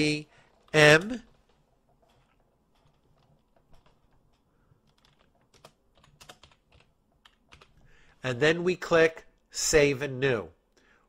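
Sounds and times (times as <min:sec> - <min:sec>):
computer keyboard typing: 0:00.3 - 0:08.2.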